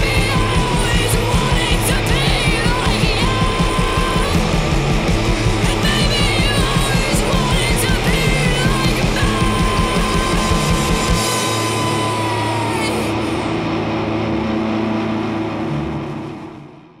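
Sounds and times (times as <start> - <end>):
bass guitar: 0.0 - 17.0
drums: 0.0 - 17.0
electric guitar: 0.0 - 17.0.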